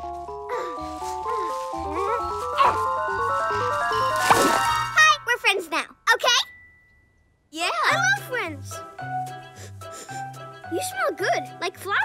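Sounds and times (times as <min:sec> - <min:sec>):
playful cartoon music: 0:00.0 - 0:06.0, 0:07.6 - 0:12.0.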